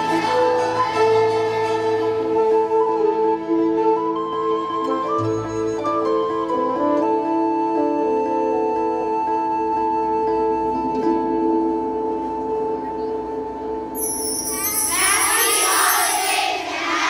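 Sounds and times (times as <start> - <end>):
children's chorus song: 0.0 - 2.2, 14.2 - 17.0.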